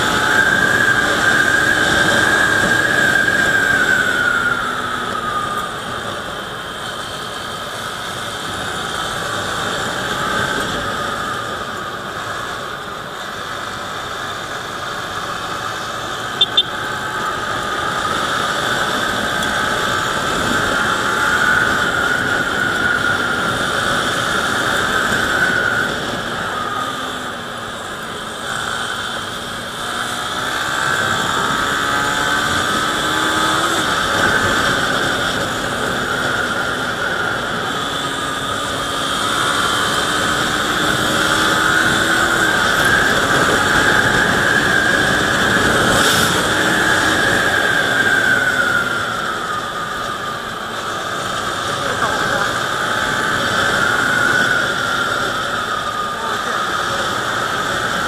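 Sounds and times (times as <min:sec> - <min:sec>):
motorcycle engine running: 0:00.0 - 0:58.0
wind rushing over microphone: 0:00.0 - 0:58.0.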